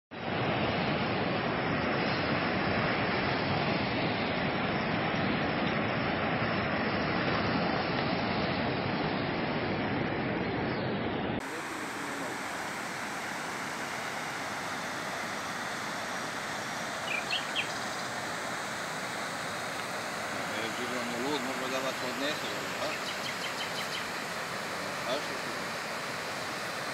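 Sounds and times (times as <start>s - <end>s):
floodwater rushing: 11.4s - 26.9s.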